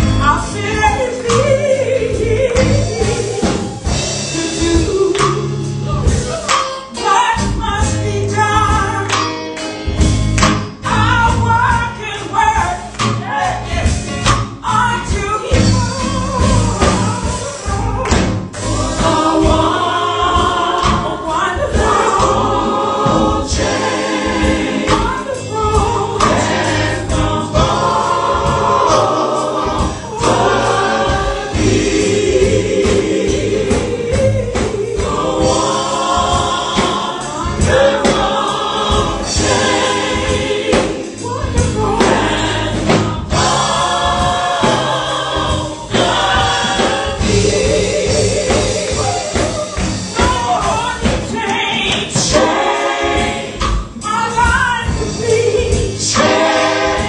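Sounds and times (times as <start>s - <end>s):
backing singers: 0.0s - 9.3s, 10.8s - 57.0s
instrumental accompaniment: 0.0s - 57.0s
woman singing into a microphone: 14.6s - 18.4s.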